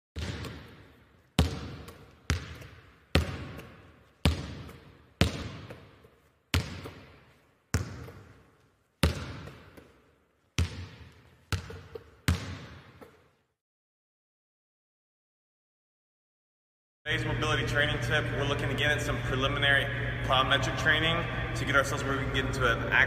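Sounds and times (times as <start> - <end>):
basketball bouncing on hard court: 0.2 - 13.3.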